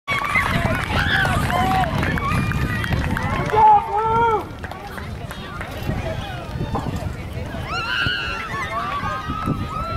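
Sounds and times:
high-pitched voices cheering: 0.1 - 4.5, 7.5 - 9.9.

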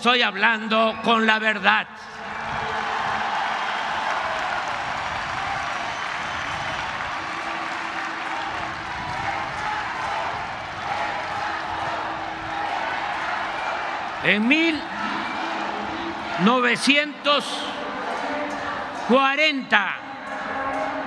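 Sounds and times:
crowd applauding and cheering: 2.0 - 21.0.

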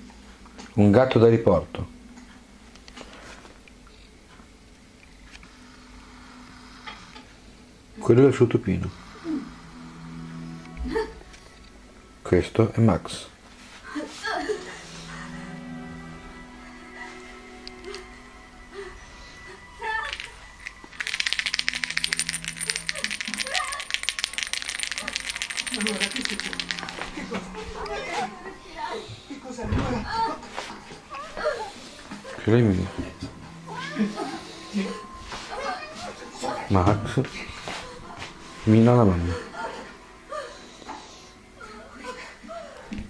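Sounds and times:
rattle shaken fast: 20.0 - 27.4.

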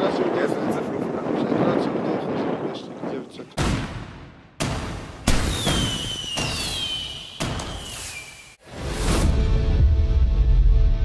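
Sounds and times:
firework bangs: 3.6 - 8.6
high whistle falling in pitch: 5.5 - 8.6.

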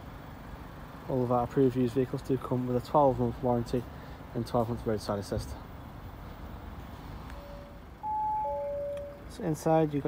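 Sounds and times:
electronic chime: 7.4 - 9.3.

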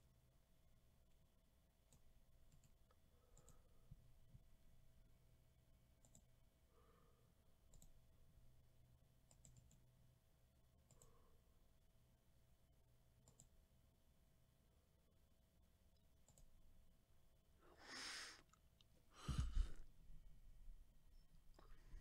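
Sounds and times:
mouse and keyboard clicks: 9.3 - 9.8.

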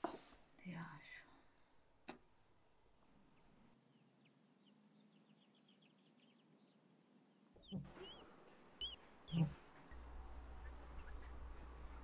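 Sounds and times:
birds chirping: 2.4 - 12.0.

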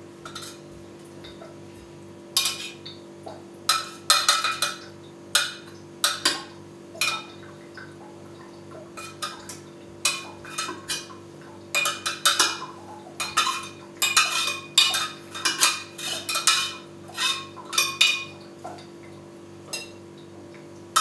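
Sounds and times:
spoon scraping inside metal column: 15.3 - 17.6.

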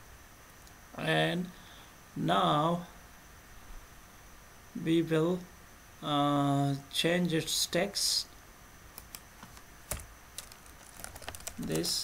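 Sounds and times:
keyboard key clicks: 9.0 - 11.9.

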